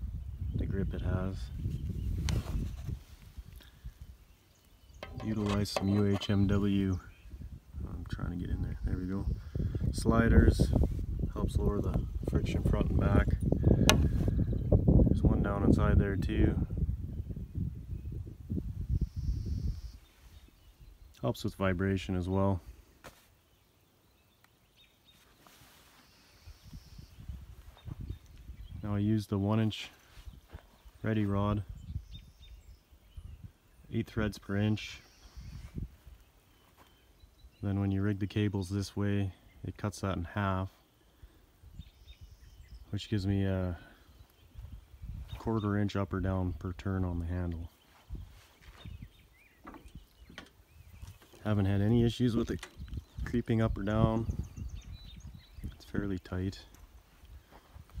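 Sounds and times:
faint bird chirps: 17.1s - 22.2s, 23.3s - 38.0s, 40.7s - 45.8s, 47.6s - 58.0s.

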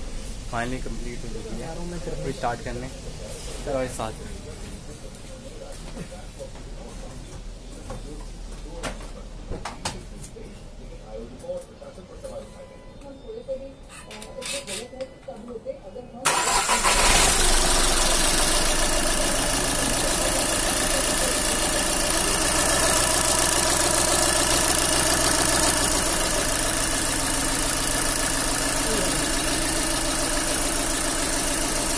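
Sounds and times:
car engine starting and idling: 16.2s - 31.9s.

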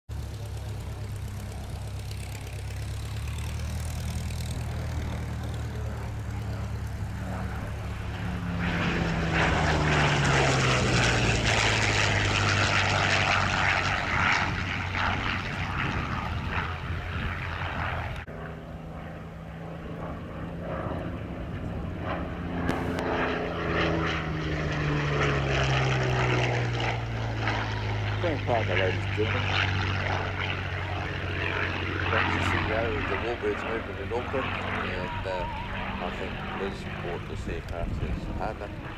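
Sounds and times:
propeller plane engine passing: 0.1s - 38.9s.

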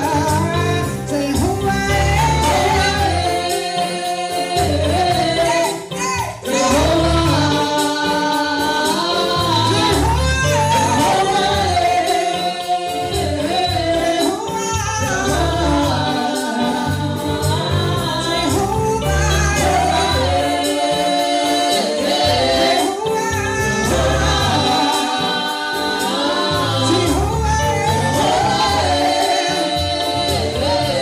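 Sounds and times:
group singing gospel: 0.0s - 31.0s
instrumental backing with bass: 0.0s - 31.0s.

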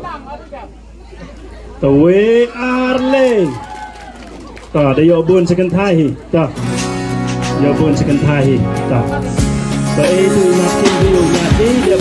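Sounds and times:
background chatter: 0.0s - 2.8s, 3.4s - 10.1s.

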